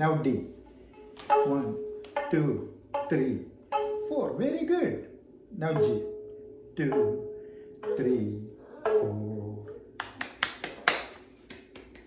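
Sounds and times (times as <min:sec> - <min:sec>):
man clapping lightly: 0:10.0 - 0:12.0.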